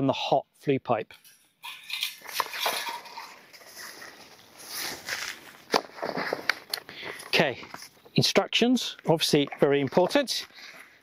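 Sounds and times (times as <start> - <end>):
packaging and paper rustling: 2.2 - 7.9.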